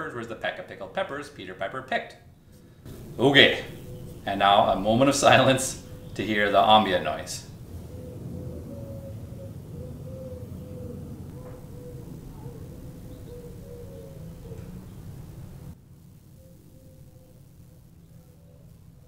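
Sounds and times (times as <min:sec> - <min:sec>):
steady low hum: 0:00.0 - 0:19.0
faint wavering tone: 0:02.9 - 0:18.9.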